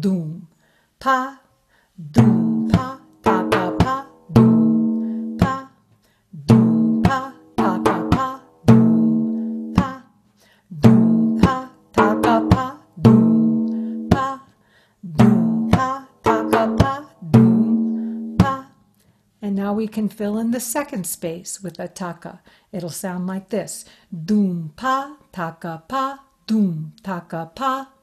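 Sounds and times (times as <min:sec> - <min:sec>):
hand-played frame drum: 0:02.1 - 0:05.7, 0:06.4 - 0:10.0, 0:10.8 - 0:14.4, 0:15.1 - 0:18.7.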